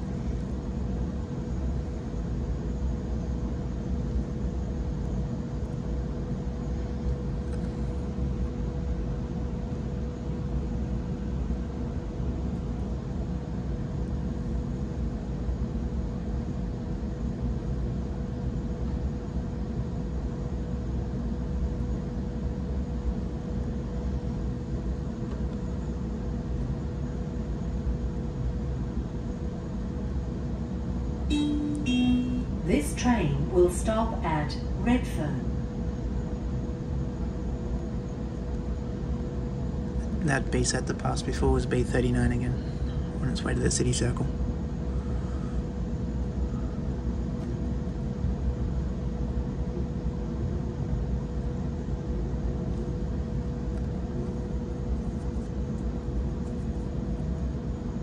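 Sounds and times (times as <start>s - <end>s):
thin steady hum: 0.0s - 17.7s, 27.5s - 58.0s
short tones: 31.3s - 34.3s.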